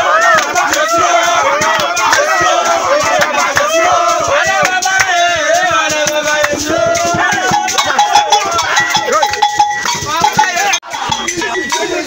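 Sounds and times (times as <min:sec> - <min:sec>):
men chanting and singing: 0:00.0 - 0:12.0
rhythmic hand percussion: 0:00.0 - 0:12.0
ringing bell-like strike: 0:07.5 - 0:12.0.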